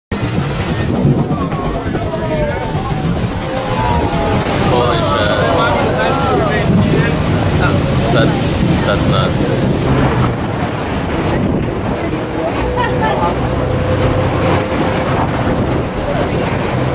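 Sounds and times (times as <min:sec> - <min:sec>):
boat engine running: 0:00.1 - 0:16.9
waves on water: 0:00.1 - 0:16.9
wind buffeting microphone: 0:00.1 - 0:16.9
passengers calling out: 0:00.6 - 0:16.9.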